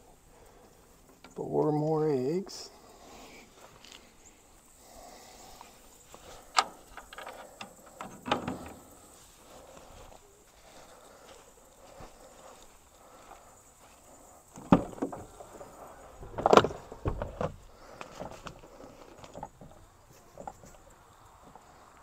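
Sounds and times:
faint rustling footsteps: 0.0 - 22.0
knocks and rattles: 6.6 - 9.0, 14.5 - 17.6.

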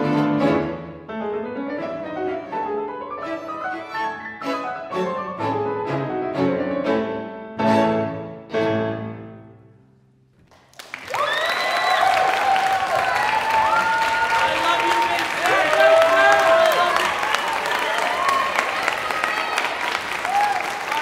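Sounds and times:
audience applause: 10.5 - 21.0
crowd whooping and cheering: 10.8 - 21.0.

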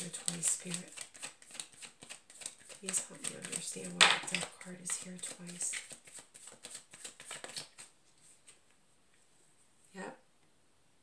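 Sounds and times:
cards being shuffled: 0.0 - 8.6.

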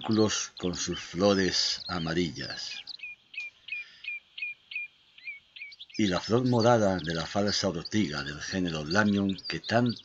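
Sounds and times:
songbird calling: 0.0 - 10.0.

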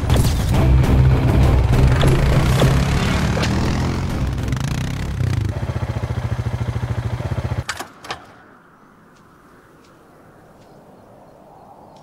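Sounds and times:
motorcycle engine idling: 1.6 - 7.6.

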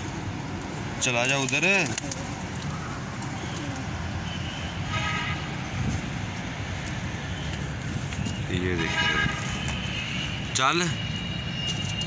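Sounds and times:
pigeons cooing: 1.8 - 4.0.

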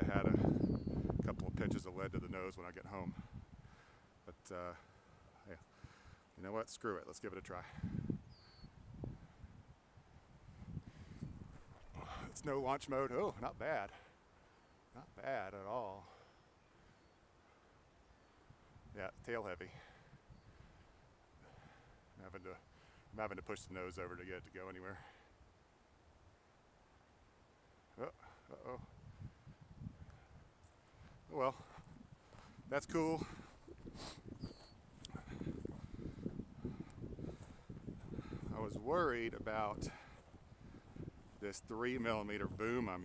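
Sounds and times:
wind rumbling on microphone: 0.0 - 3.8, 7.6 - 12.6, 28.6 - 43.0.

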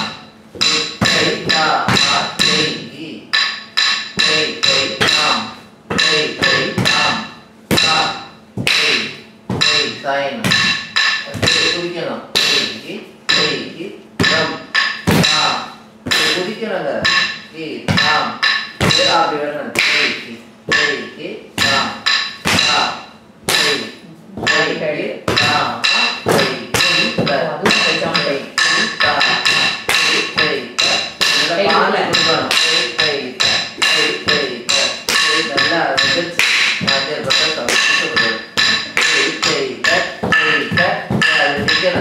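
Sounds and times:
rhythmic syllables chanted: 0.0 - 42.0
wooden stick striking wooden block: 0.0 - 42.0.

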